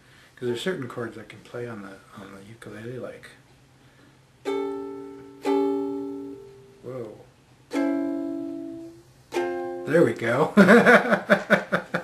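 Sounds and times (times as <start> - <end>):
ukulele chords strummed: 4.4 - 10.5.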